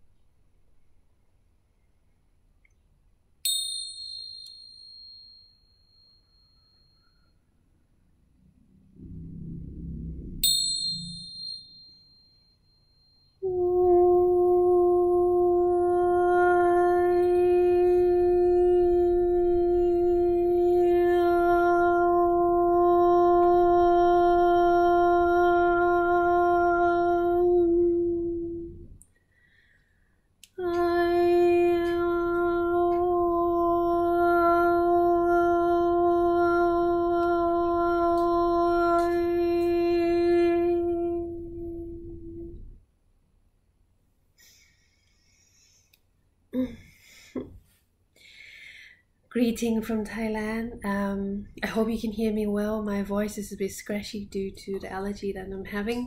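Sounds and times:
tingsha cymbals ringing: 0:03.4 - 0:07.6, 0:10.4 - 0:13.4
woman singing long note: 0:13.4 - 0:29.0, 0:30.6 - 0:42.8.

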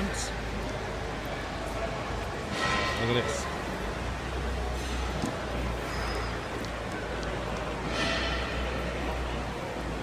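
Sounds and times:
low hum of indoor hall: 0:00.0 - 0:10.0.

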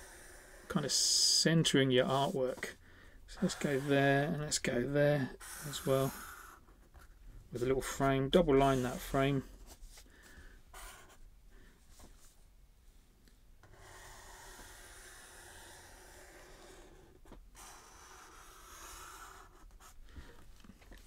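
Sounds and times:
marker scratching on paper: 0:03.4 - 0:04.3, 0:10.8 - 0:11.2, 0:13.7 - 0:17.0, 0:17.6 - 0:20.0.

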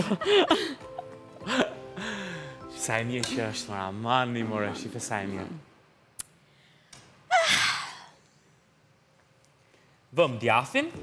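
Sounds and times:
breathy gasp: 0:02.0 - 0:02.6.

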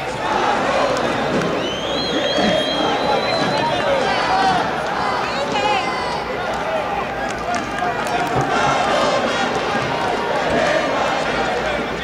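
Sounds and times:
crowd noise: 0:00.0 - 0:12.0
spectators shouting: 0:00.0 - 0:12.0.

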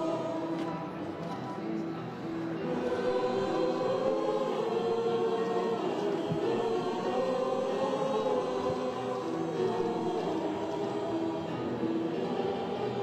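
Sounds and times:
choir singing long notes: 0:00.0 - 0:01.4, 0:02.4 - 0:13.0.

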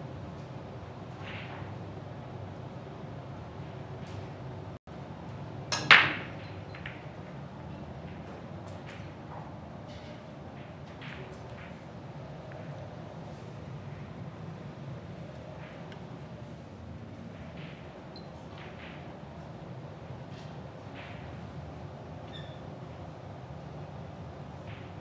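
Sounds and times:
cue ball cracking into racked balls: 0:05.7 - 0:07.3.

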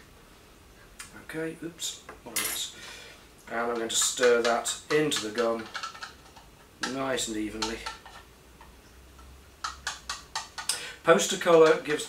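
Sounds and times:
stirrer tapping a small pot: 0:03.6 - 0:08.8, 0:09.6 - 0:10.7.

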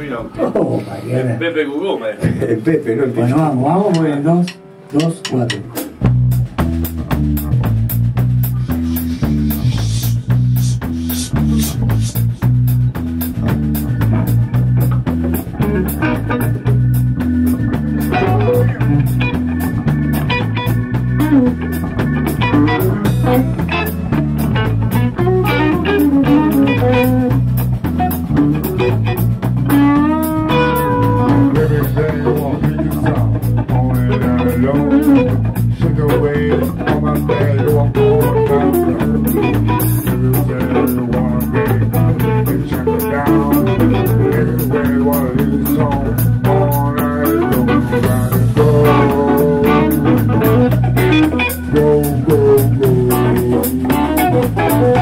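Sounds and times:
bass guitar line: 0:02.2 - 0:55.0
count-in: 0:03.3 - 0:12.6, 0:14.0 - 0:55.0
drum kit beat: 0:03.8 - 0:55.0
electric guitars: 0:04.0 - 0:55.0.

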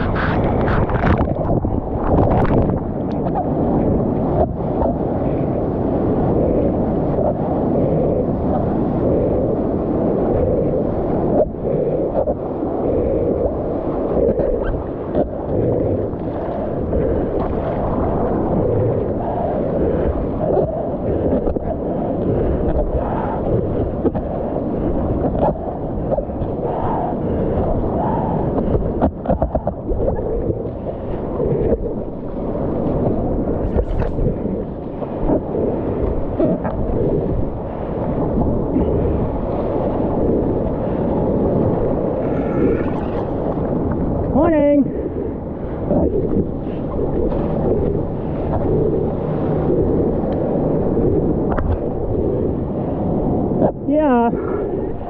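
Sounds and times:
muffled water sloshing: 0:00.0 - 0:55.0
wind buffeting microphone: 0:00.0 - 0:55.0.

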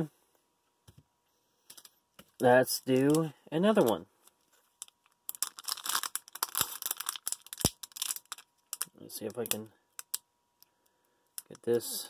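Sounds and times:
foil wrapper crinkling and tearing: 0:04.7 - 0:10.2.

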